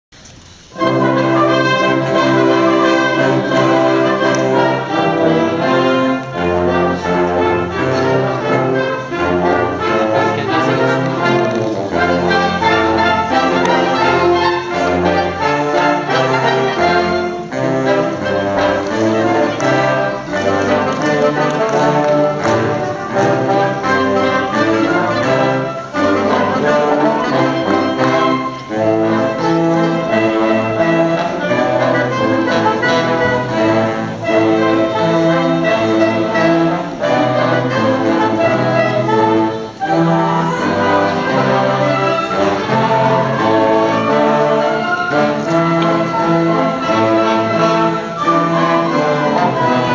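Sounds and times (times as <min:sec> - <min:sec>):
wind band playing: 0:00.3 - 0:49.9.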